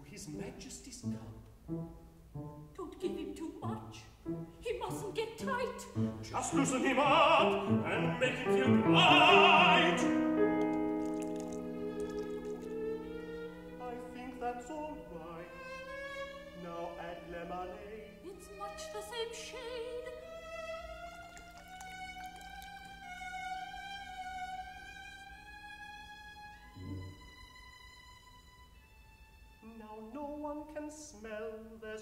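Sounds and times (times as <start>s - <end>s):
orchestra sustained chord: 11.0s - 18.7s.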